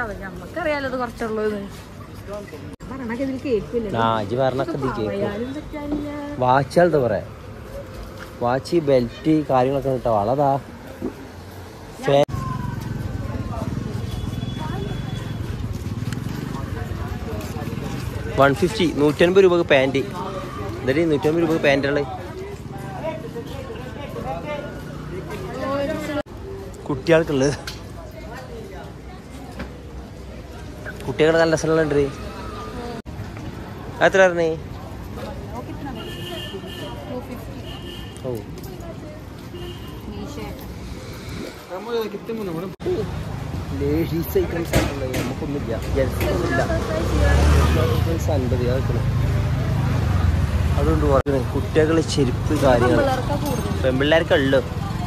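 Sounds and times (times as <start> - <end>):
street noise: 0.0 - 55.0
street voices: 0.0 - 55.0.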